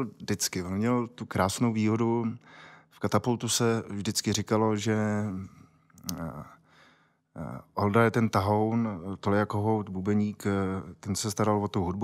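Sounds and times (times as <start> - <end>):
man speaking: 0.0 - 2.4, 3.0 - 6.6, 7.4 - 12.0
man breathing: 2.4 - 3.0, 6.6 - 7.3.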